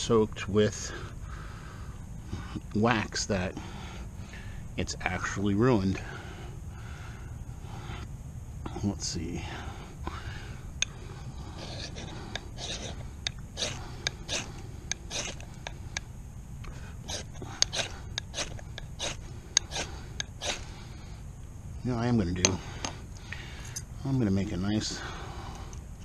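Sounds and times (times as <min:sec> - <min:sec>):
knife scraping ferrocerium rod: 0:11.5 - 0:13.0, 0:13.6 - 0:15.8, 0:17.0 - 0:20.6.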